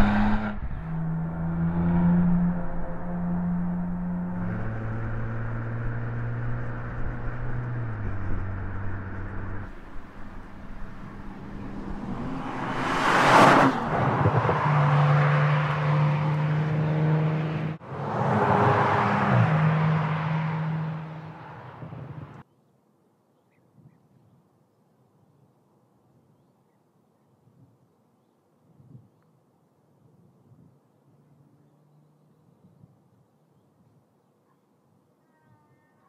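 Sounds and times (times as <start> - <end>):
car engine driving: 0.0 - 22.4.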